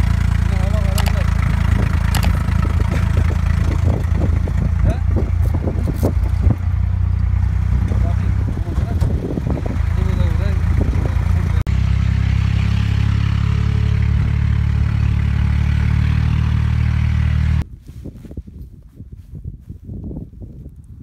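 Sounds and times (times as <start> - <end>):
tractor engine running: 0.0 - 17.6.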